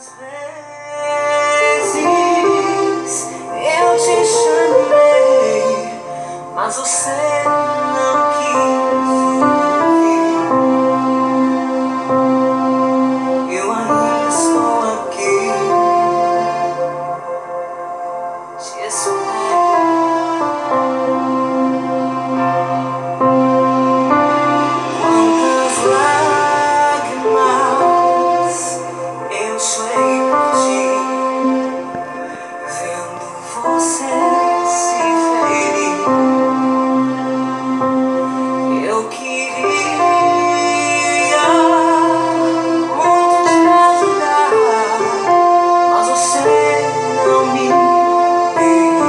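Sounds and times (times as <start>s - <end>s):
electronic keyboard chords: 0.0s - 49.0s
gliding melody line: 0.0s - 49.0s.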